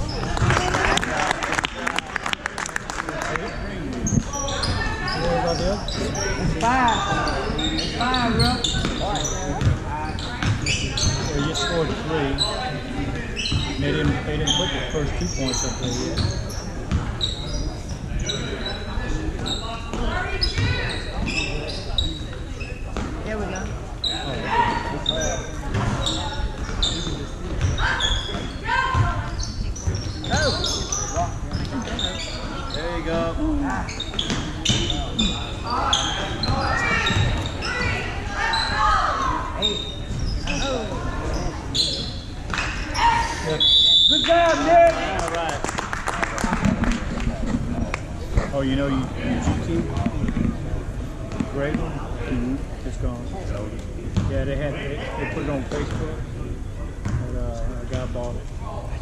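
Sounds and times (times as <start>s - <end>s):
sneakers squeaking: 0.0s - 1.0s, 3.2s - 45.0s, 47.4s - 51.8s, 54.0s - 54.3s, 55.2s - 58.2s.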